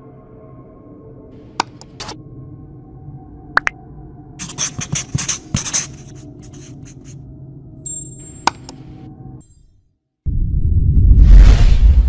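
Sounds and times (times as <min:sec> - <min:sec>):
steady low drone: 0:00.0 - 0:04.4, 0:06.0 - 0:09.4
marker scratching on whiteboard: 0:01.6 - 0:02.2, 0:04.4 - 0:07.2.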